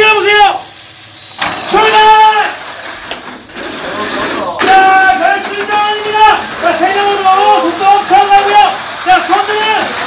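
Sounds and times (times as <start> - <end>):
toy car electric motors whirring: 1.2 - 10.0
person shouting: 4.6 - 8.8.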